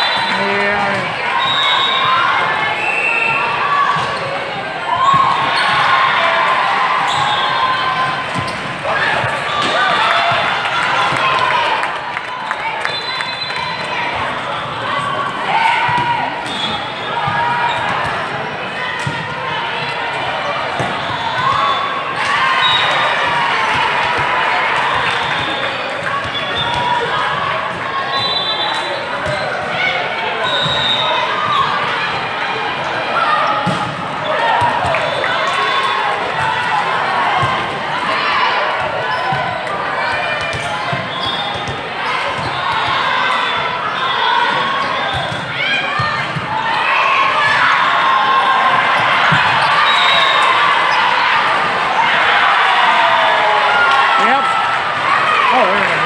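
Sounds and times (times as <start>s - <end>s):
many overlapping voices: 0.0s - 56.0s.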